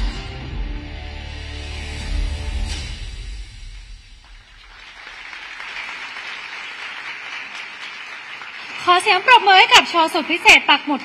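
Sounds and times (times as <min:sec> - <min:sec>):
music: 0:00.0 - 0:04.2
audience applause: 0:04.2 - 0:11.0.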